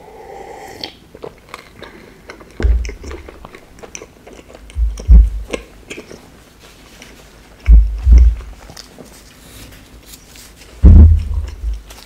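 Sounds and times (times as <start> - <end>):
person gulping a drink: 0.3 - 3.6, 10.8 - 11.9
wet chewing clicks: 0.8 - 6.4, 11.1 - 12.0
dull low thumps: 2.6 - 3.3, 4.7 - 5.6, 7.7 - 8.6, 10.8 - 11.9.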